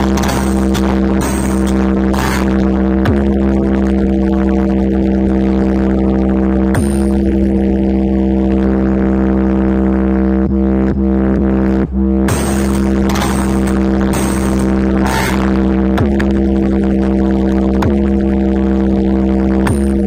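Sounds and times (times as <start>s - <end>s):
loud electronic music: 0.0s - 20.0s.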